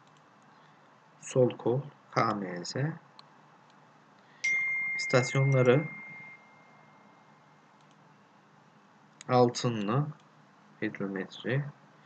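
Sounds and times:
faint clicks: 0:00.0 - 0:00.7, 0:07.8 - 0:08.0
high ringing chime: 0:04.4 - 0:07.6.

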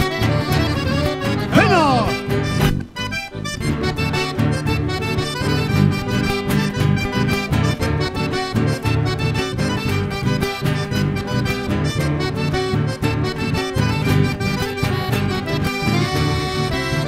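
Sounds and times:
accordion: 0:00.0 - 0:17.0
bass guitar: 0:00.0 - 0:17.0
strummed acoustic guitars: 0:00.0 - 0:17.0.

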